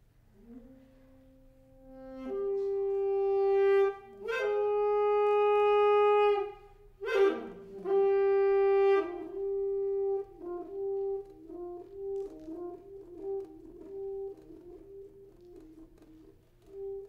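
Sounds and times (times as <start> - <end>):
solo soprano saxophone: 0.3 - 17.0.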